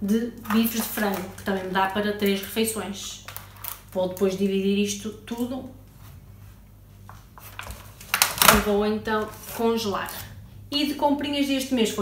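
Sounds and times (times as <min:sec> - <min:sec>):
low steady hum: 0:00.0 - 0:12.0
plastic-wrapped packs rustling: 0:00.4 - 0:04.6, 0:07.2 - 0:10.3.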